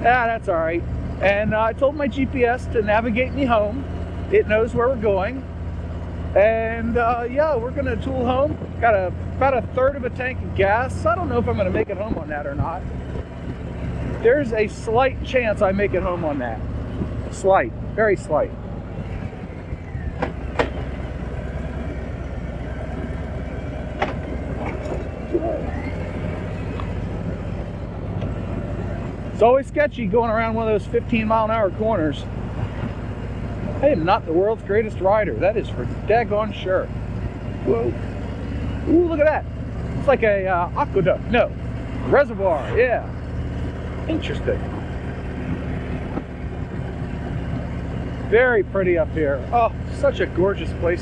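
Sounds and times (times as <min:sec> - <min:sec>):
motorcycle engine rumble: 0:00.0 - 0:51.0
road and wind noise: 0:00.0 - 0:51.0.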